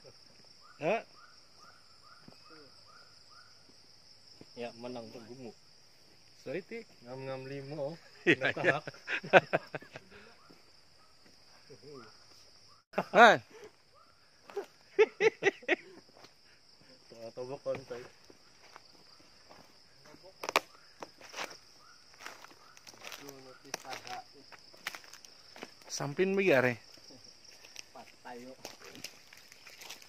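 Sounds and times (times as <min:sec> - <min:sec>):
insect buzz: 0:00.0 - 0:30.0
footsteps on dry ground: 0:17.6 - 0:26.0, 0:26.9 - 0:30.0.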